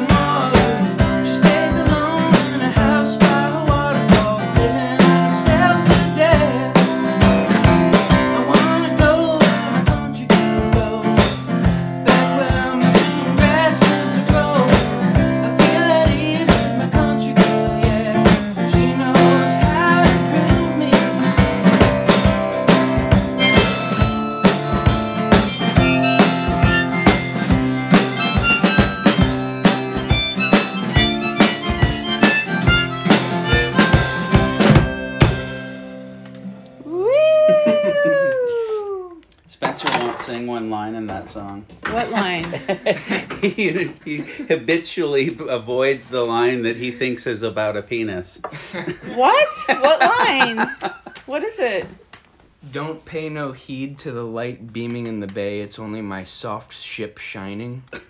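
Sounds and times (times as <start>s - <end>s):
harmonica chords: 0.0s - 36.6s
howl-like cry: 36.9s - 39.2s.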